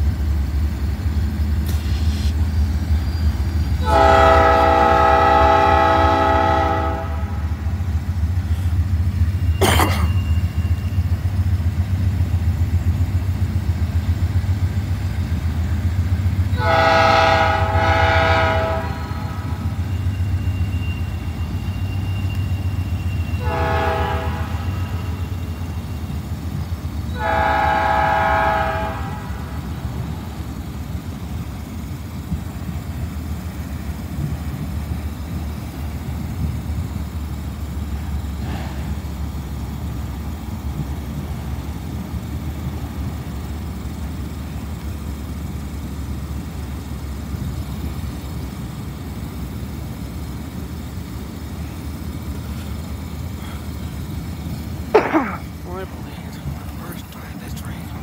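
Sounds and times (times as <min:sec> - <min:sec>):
diesel locomotives rumbling: 0:00.0 - 0:58.0
train air horn blasts: 0:03.8 - 0:07.5, 0:16.5 - 0:19.9, 0:23.0 - 0:25.4, 0:27.2 - 0:29.6.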